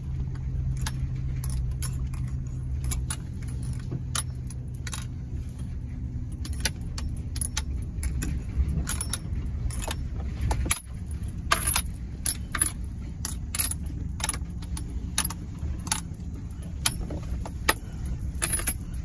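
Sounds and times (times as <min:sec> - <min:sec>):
clinks and rattles in cab: 0:00.0 - 0:19.0
truck engine running low: 0:00.0 - 0:19.0.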